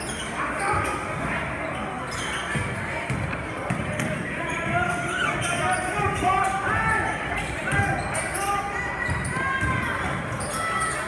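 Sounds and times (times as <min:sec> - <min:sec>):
sneaker squeaks: 0:00.0 - 0:11.0
spectators' voices echoing: 0:00.0 - 0:11.0.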